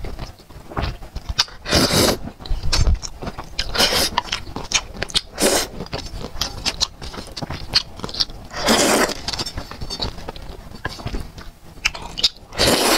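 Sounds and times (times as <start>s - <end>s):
wet chewing: 0.0s - 12.9s
loud noodle slurps: 1.6s - 2.2s, 3.7s - 4.2s, 5.4s - 5.7s, 8.5s - 9.2s, 12.5s - 12.9s.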